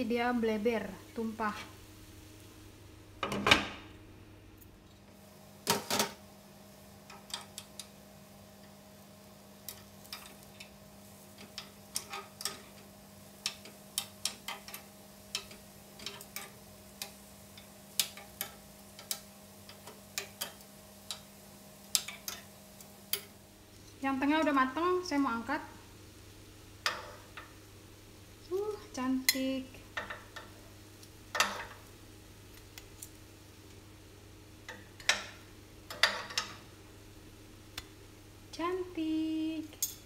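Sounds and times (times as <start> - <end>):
faint steady hum: 0.0 - 40.0
metal spoons tapping on pan: 13.4 - 21.3, 21.9 - 22.5, 29.2 - 30.6, 34.7 - 36.6.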